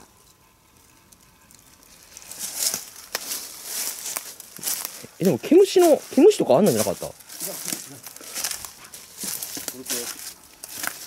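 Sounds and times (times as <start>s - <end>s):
footsteps crunching through dry leaves: 1.8s - 11.0s.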